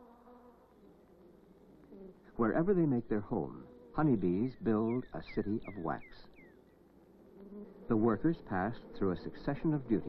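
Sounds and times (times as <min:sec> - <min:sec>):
honey bees buzzing: 0:00.0 - 0:10.0.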